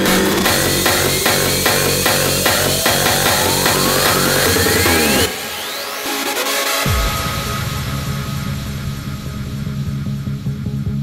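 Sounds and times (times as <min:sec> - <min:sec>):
rising synth sweep: 0:00.0 - 0:09.0.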